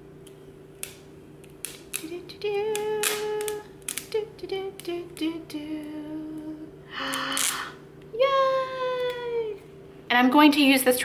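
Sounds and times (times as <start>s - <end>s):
tape crackling as peeled: 0.2s - 7.7s
woman humming a tune: 1.9s - 9.6s.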